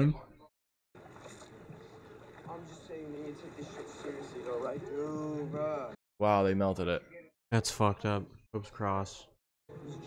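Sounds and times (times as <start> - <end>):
faint dialogue voices: 0.0 - 6.0
water and harbour ambience: 1.0 - 6.0.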